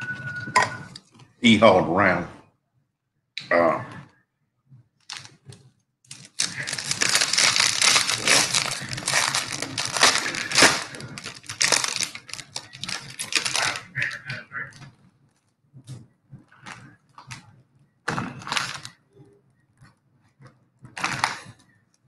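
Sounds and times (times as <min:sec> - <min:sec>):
foil wrapper crinkling and tearing: 0:05.0 - 0:05.4, 0:06.1 - 0:14.9, 0:18.3 - 0:19.0, 0:21.0 - 0:21.5.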